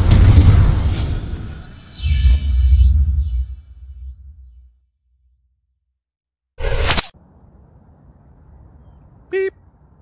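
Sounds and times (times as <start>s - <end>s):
whoosh transition effect: 0.0s - 4.7s.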